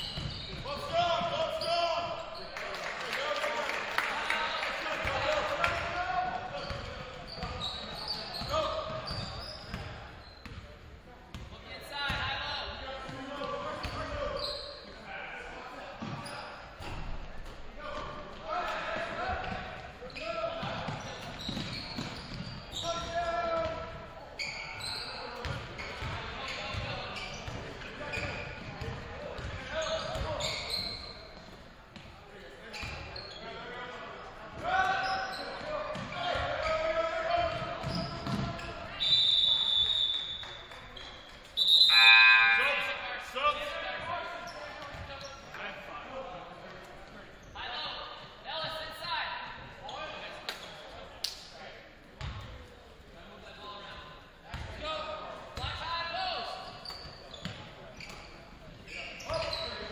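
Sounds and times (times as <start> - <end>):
basketball bouncing on wooden floor: 37.5 - 38.6
referee whistle blast: 39.0 - 40.4, 41.6 - 42.9.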